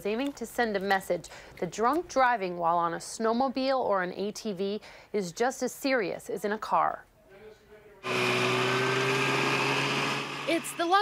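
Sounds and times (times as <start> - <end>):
snowmobile engines droning: 8.0 - 11.0.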